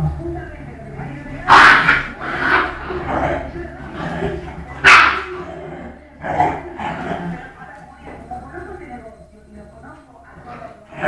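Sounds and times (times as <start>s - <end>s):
dogs scuffling: 0.8s - 11.0s
dogs barking and yipping: 1.5s - 5.5s.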